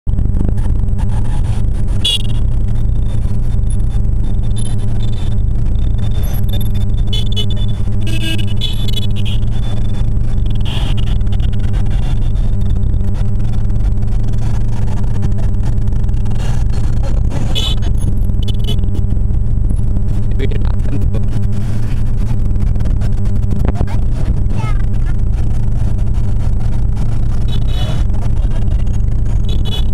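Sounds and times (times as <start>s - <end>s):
motorcycle engine running: 0.1s - 29.9s.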